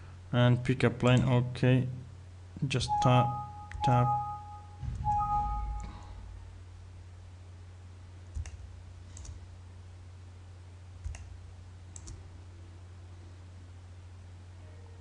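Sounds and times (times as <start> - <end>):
low electrical hum: 0.0 - 15.0
computer mouse clicks: 8.3 - 9.4, 11.0 - 11.3, 11.9 - 12.2.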